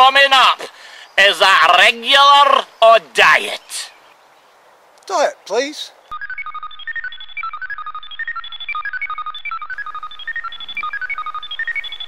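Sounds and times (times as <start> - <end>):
short electronic beeps: 6.1 - 12.0.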